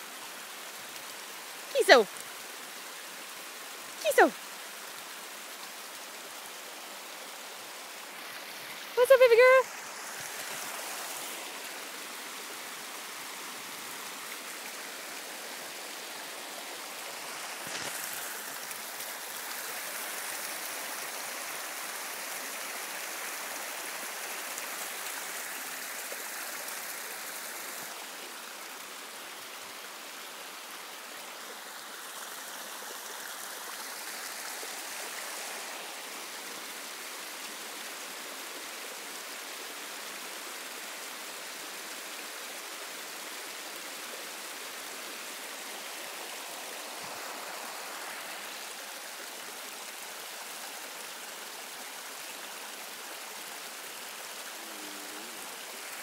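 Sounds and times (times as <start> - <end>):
running water rushing: 0.0 - 56.0.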